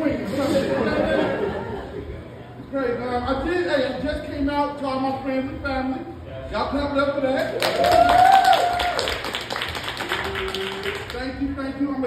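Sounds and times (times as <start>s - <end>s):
audience clapping in rhythm: 7.4s - 11.2s.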